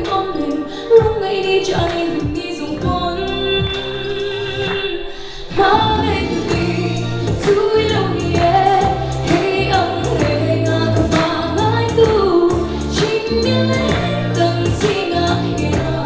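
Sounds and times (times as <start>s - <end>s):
woman singing into microphone: 0.0s - 16.0s
instrumental accompaniment: 0.1s - 16.0s.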